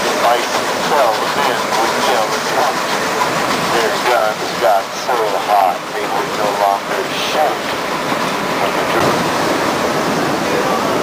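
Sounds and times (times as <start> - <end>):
train rolling along track: 0.0 - 11.0.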